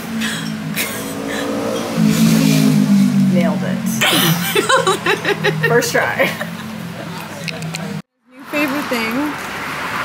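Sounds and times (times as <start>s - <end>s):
vehicle engine droning: 0.0s - 8.0s.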